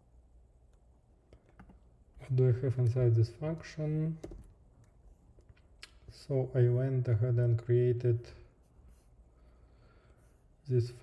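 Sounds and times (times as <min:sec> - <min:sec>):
low room hum: 0:00.0 - 0:11.0
faint keyboard and mouse clicks: 0:00.7 - 0:01.8.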